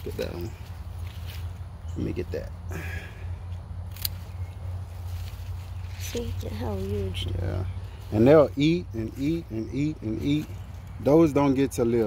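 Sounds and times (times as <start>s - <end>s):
foliage rustling: 0.0s - 2.0s, 2.7s - 11.3s.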